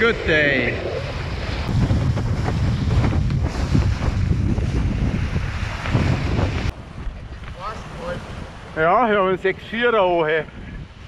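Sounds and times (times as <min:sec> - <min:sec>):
water rushing under board: 0:00.0 - 0:10.1
wind buffeting microphone: 0:00.0 - 0:11.0.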